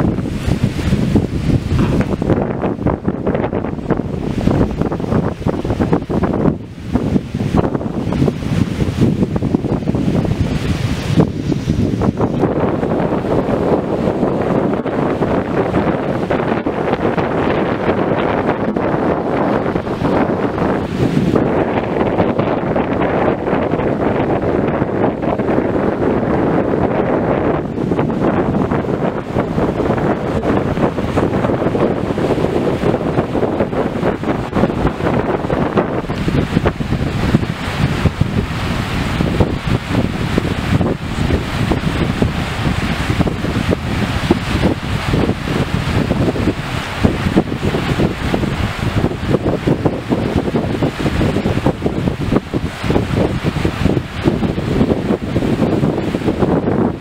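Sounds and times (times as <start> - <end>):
choppy water washing shore: 0.0 - 57.0
wind buffeting microphone: 0.0 - 57.0.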